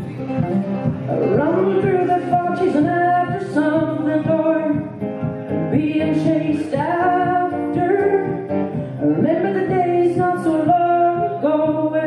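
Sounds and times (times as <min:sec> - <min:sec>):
acoustic guitar: 0:00.0 - 0:12.0
person singing long notes: 0:01.1 - 0:04.7.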